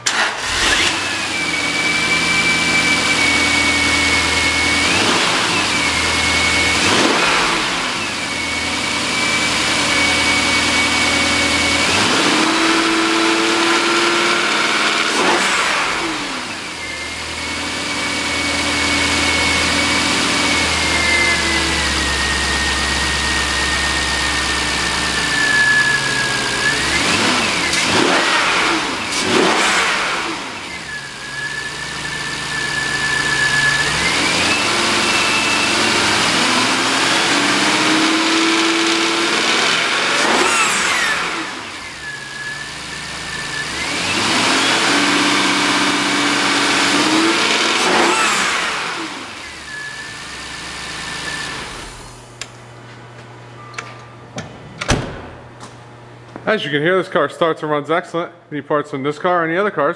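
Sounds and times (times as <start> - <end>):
car engine idling and revving: 0.0 - 53.7.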